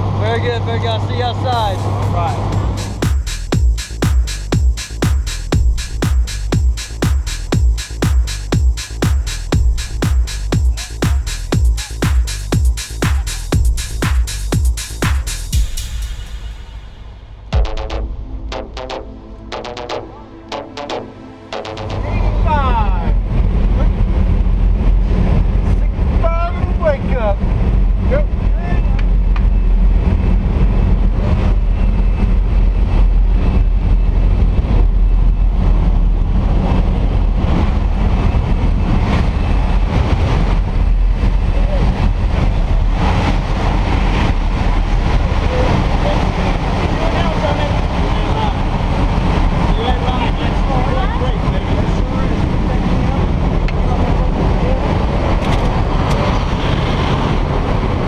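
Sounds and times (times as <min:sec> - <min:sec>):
plane engine and propeller drone: 0:00.0 - 0:03.0, 0:20.1 - 0:58.0.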